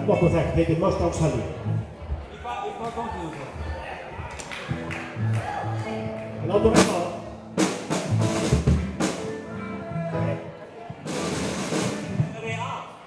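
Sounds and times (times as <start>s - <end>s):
bass notes: 0.0s - 2.3s, 3.5s - 12.8s
live rock band playing: 4.6s - 12.4s.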